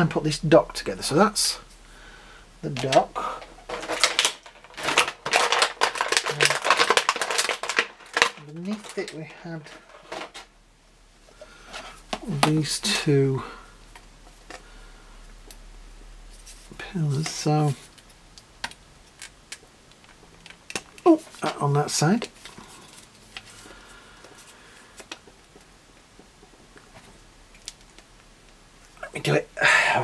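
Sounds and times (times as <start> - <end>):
plastic toy parts clicking: 2.8 - 10.4.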